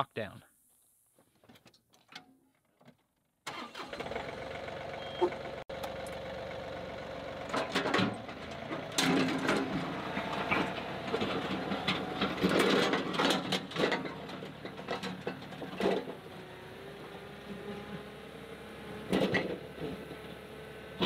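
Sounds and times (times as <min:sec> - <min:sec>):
implement clanking and rattling: 0:02.9 - 0:18.0, 0:18.9 - 0:20.4
tractor diesel engine running: 0:03.5 - 0:21.0.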